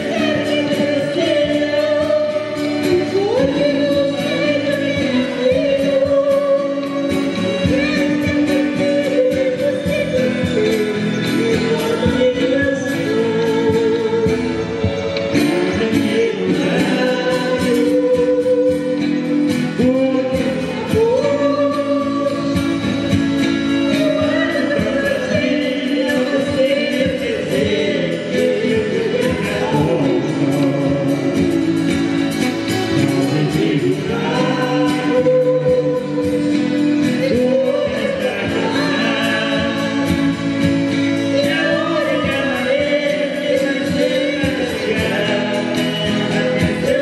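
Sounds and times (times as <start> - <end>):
accordion: 0.0 - 47.0
strummed acoustic guitars: 0.0 - 47.0
woman singing: 0.0 - 47.0.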